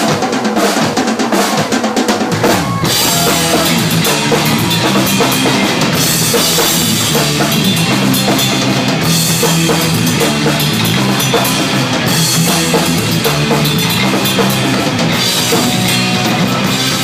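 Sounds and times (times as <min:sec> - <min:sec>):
drum kit hits: 0:00.0 - 0:17.0
rock band playing: 0:00.0 - 0:17.0.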